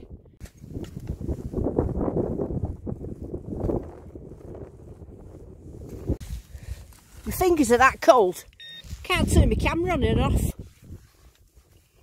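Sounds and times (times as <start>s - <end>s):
wind buffeting microphone: 0.0s - 7.8s, 8.9s - 11.3s.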